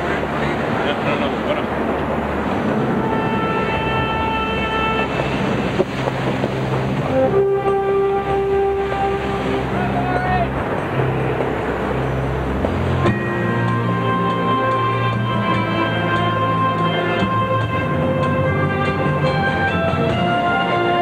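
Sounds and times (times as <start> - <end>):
rushing sea: 0.0 - 21.0
wind: 0.0 - 21.0
long held notes: 2.6 - 12.1, 12.8 - 21.0.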